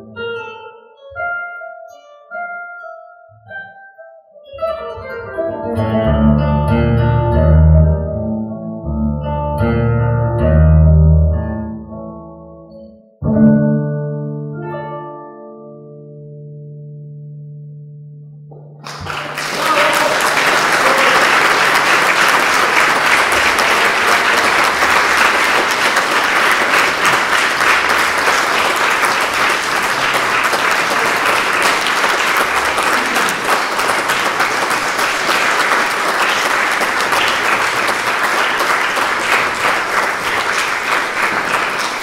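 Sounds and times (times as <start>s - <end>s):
audience clapping: 18.8s - 42.0s.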